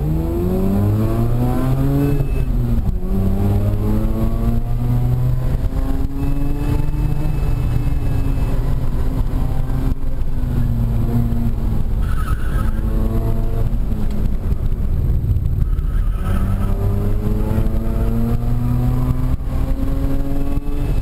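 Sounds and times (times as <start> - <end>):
rotary engine revving: 0.0 - 21.0
tyre squeal: 12.0 - 13.0.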